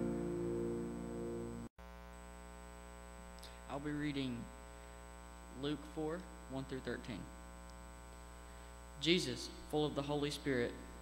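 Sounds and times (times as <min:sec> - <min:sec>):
electrical mains hum: 0:00.0 - 0:11.0
person speaking: 0:03.4 - 0:04.6, 0:05.5 - 0:07.4, 0:09.0 - 0:11.0.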